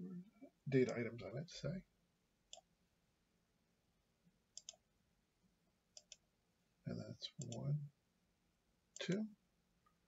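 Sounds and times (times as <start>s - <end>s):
computer mouse clicks: 2.5s - 2.7s, 4.5s - 4.8s, 5.9s - 6.2s, 7.4s - 7.6s.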